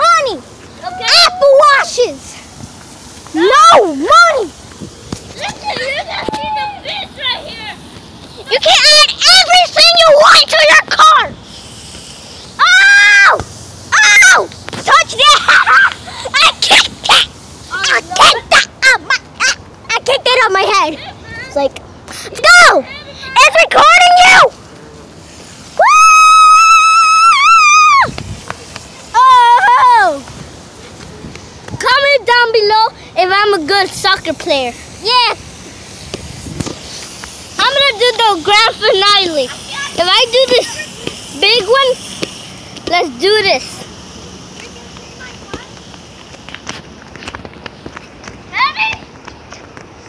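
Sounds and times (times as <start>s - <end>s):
child shouting and screaming: 0.0s - 2.4s, 3.3s - 4.6s, 5.3s - 7.8s, 8.4s - 11.4s, 12.6s - 24.6s, 25.8s - 28.2s, 28.9s - 30.9s, 31.8s - 35.4s, 37.6s - 42.0s, 48.5s - 49.1s.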